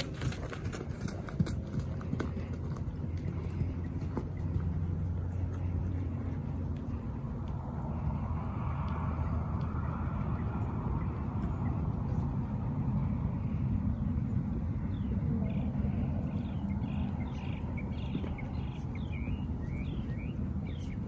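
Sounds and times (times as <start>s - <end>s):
bird chirps: 14.9s - 21.0s.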